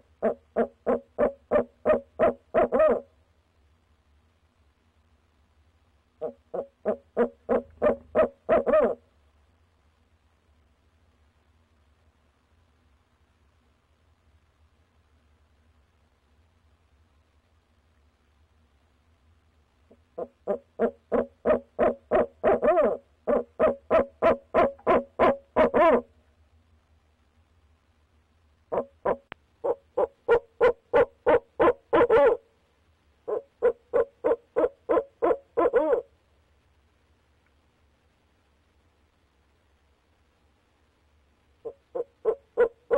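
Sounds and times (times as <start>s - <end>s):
owl hooting: 0.0s - 3.2s, 6.2s - 9.0s, 19.9s - 26.1s, 28.7s - 32.5s, 33.2s - 36.1s, 41.6s - 42.9s.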